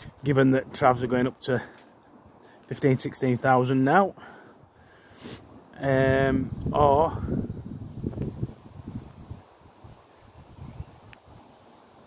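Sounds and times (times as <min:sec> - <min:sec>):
wind buffeting microphone: 0:05.6 - 0:11.5.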